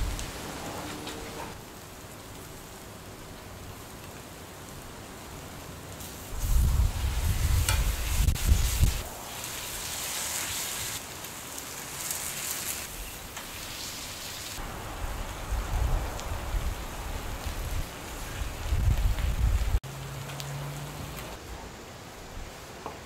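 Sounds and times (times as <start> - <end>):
patties sizzling on a grill: 0.0 - 21.4.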